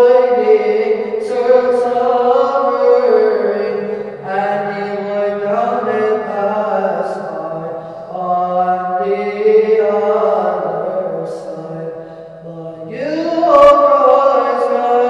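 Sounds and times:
person chanting: 0.0s - 15.0s.

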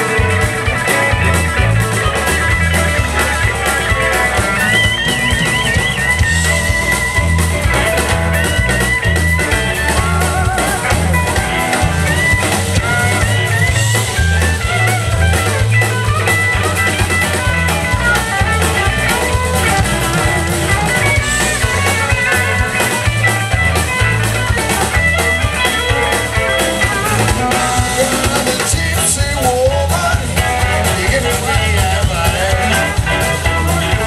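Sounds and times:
bass: 0.0s - 34.0s
drums: 0.0s - 34.0s
electric guitars: 0.0s - 34.0s
keyboard: 0.0s - 34.0s.

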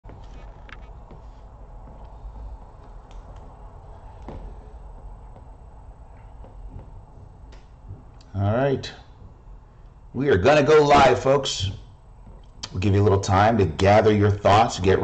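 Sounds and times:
low steady hum: 0.1s - 15.0s.

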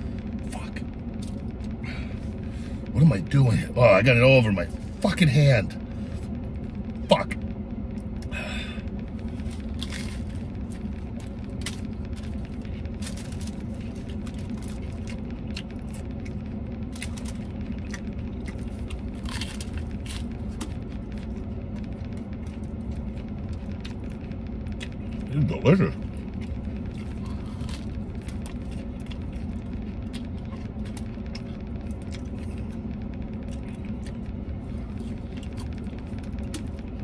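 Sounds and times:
low vehicle cab hum: 0.0s - 37.0s
man chewing with wet clicks: 8.9s - 37.0s.

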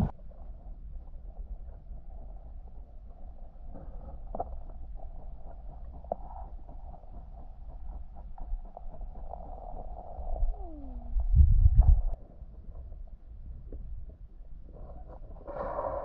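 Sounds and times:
low rumble of moving water: 0.0s - 16.0s.

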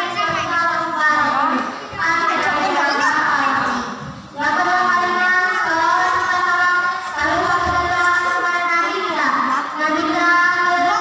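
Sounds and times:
boy singing into microphone: 0.0s - 11.0s.

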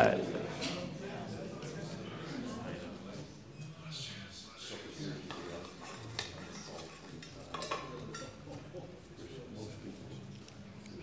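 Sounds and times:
people talking quietly: 0.0s - 11.0s.

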